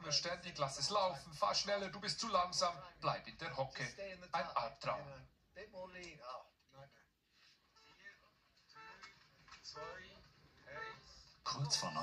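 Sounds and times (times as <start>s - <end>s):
television speech: 0.0s - 12.0s.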